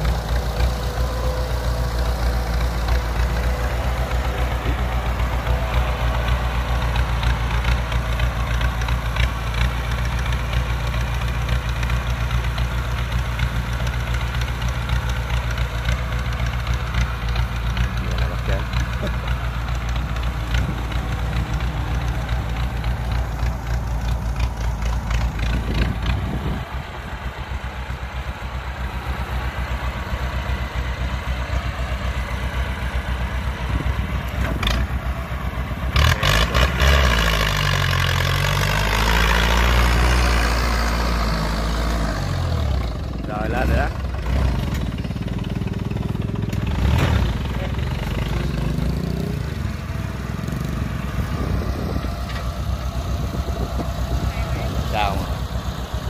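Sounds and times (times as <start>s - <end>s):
tractor diesel engine under load: 0.0s - 56.0s.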